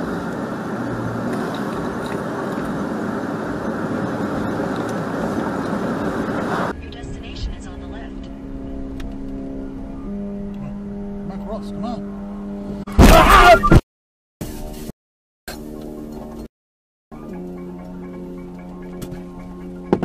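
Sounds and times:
car cabin low hum: 0:00.0 - 0:12.8
tyre and road noise: 0:00.0 - 0:13.8.

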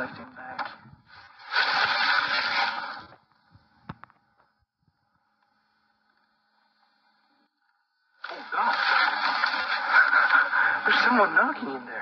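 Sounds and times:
loud burst of noise: 0:01.4 - 0:03.1.

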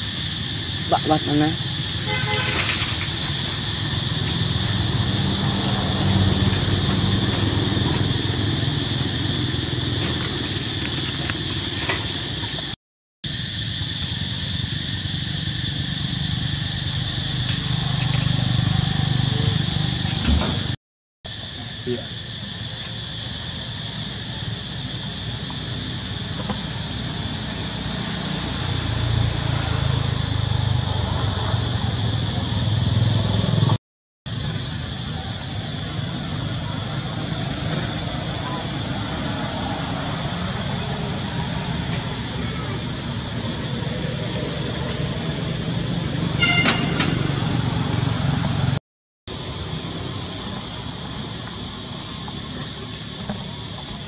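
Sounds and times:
cicadas droning: 0:00.0 - 0:54.0.

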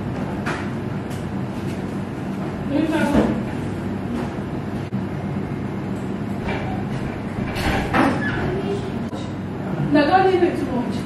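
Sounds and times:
constant hum: 0:00.0 - 0:11.0
low mechanical rumble: 0:00.0 - 0:11.0.

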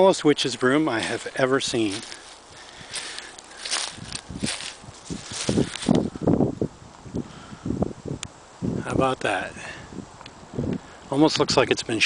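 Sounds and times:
footsteps in dry leaves: 0:00.0 - 0:06.2
leaves and twigs brushing: 0:00.0 - 0:06.3.

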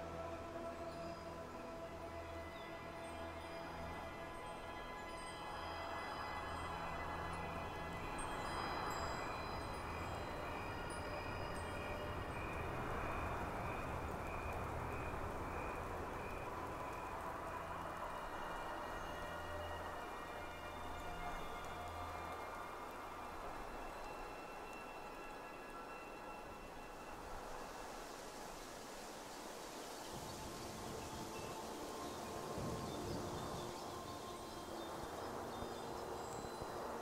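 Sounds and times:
soft wind: 0:00.0 - 0:37.0.

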